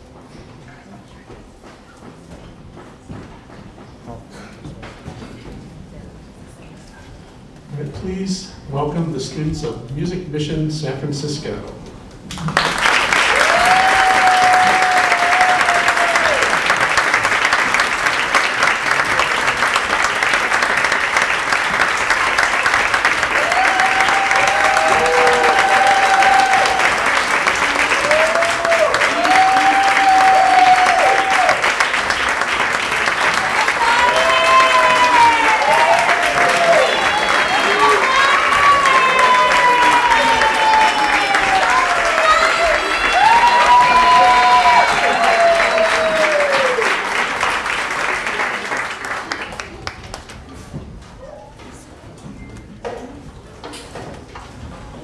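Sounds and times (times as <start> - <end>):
people cheering: 12.3 - 50.3
audience applauding: 12.3 - 50.6.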